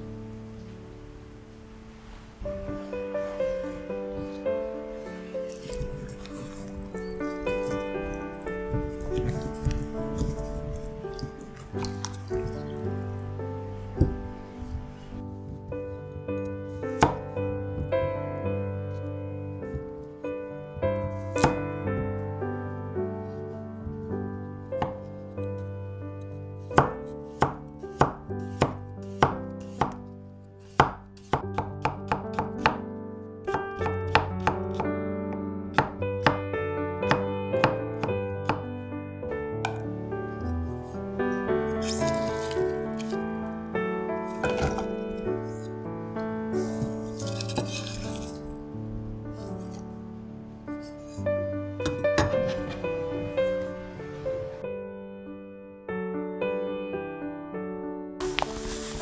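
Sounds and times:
soft piano music: 0.0s - 59.0s.

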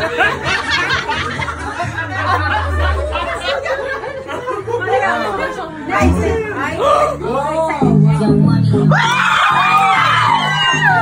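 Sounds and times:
people chattering: 0.0s - 8.8s.

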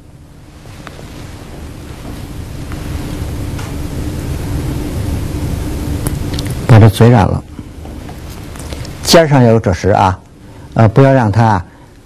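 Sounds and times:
background hiss and rumble: 0.0s - 12.0s
faint hum: 0.0s - 12.0s.

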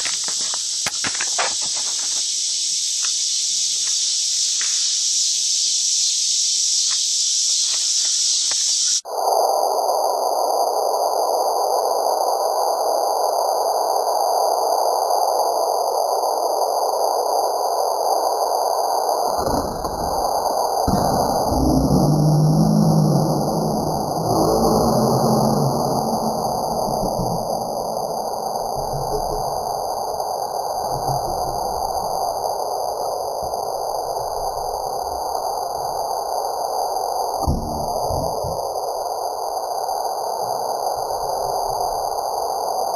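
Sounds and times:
night insects chorus: 0.0s - 42.9s
low rumbling thumps: 19.6s - 30.1s.

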